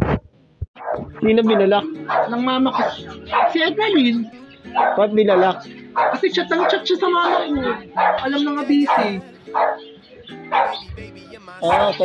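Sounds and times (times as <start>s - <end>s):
dog barking: 0.8s - 3.8s, 4.7s - 9.9s, 10.5s - 10.8s, 11.7s - 12.0s
background music with held tones: 0.9s - 12.0s.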